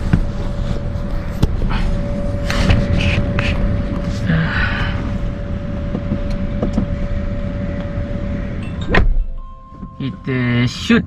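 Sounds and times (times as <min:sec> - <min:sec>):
car cabin low rumble: 0:00.0 - 0:11.0
faint hum: 0:00.0 - 0:11.0.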